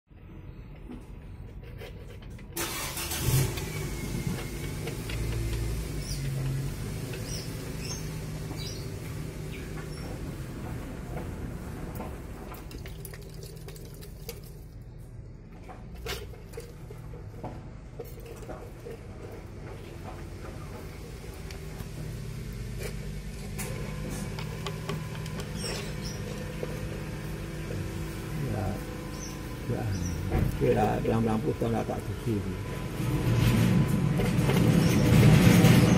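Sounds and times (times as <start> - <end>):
engine running: 2.3 - 35.9
high squeaks: 25.0 - 26.9.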